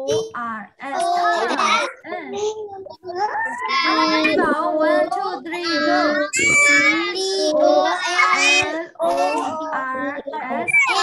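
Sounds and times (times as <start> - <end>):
child singing: 2.7 - 11.0.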